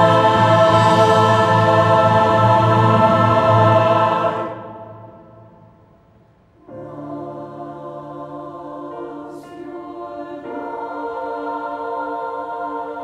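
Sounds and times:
choir holding a chord: 0.0s - 5.9s, 6.6s - 13.0s.

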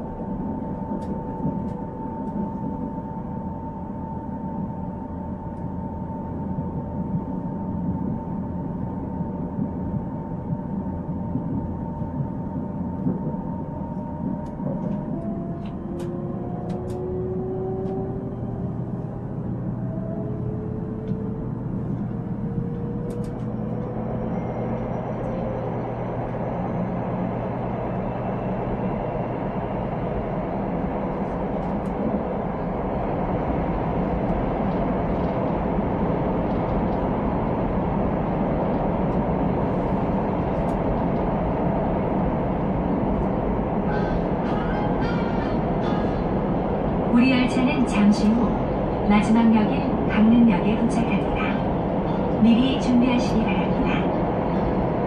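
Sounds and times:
train running rumble: 0.0s - 55.0s.

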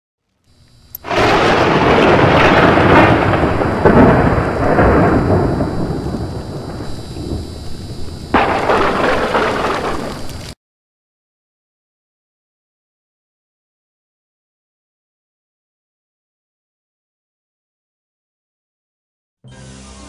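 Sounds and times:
rain: 1.0s - 10.6s
thunder cracking and rumbling: 1.0s - 10.6s.

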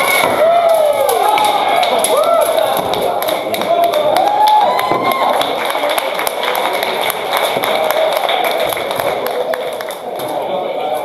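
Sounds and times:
people shouting: 0.0s - 2.9s, 4.0s - 5.4s.

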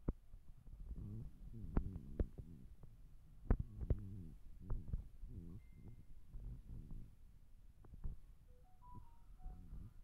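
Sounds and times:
low hum: 0.9s - 10.0s.

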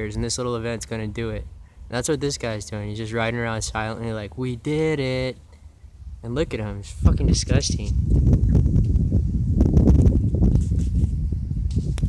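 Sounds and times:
wind buffeting microphone: 5.8s - 12.0s
microphone handling noise: 6.8s - 12.0s.

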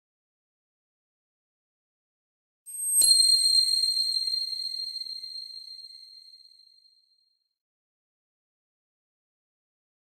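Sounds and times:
high bell-like chime: 2.7s - 6.8s.

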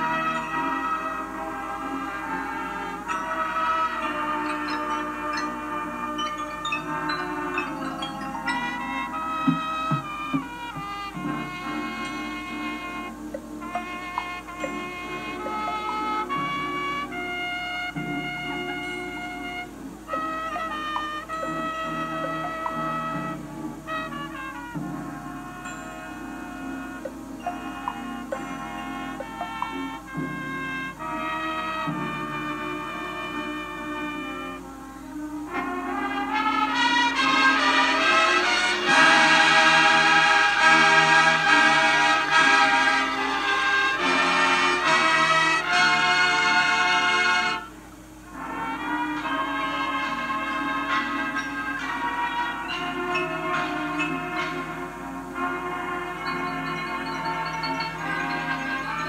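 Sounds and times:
marching band music through speakers: 0.0s - 59.0s.

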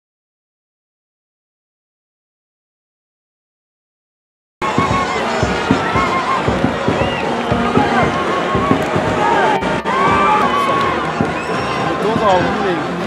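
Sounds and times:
stadium crowd shouting and chanting: 4.6s - 13.0s.

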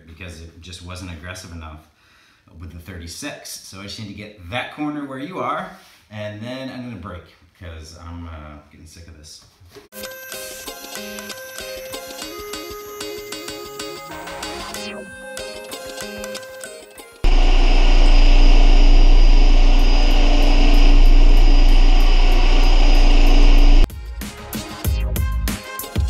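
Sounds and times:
background music: 9.9s - 17.3s, 23.8s - 26.0s
floor sander running: 17.2s - 23.9s.

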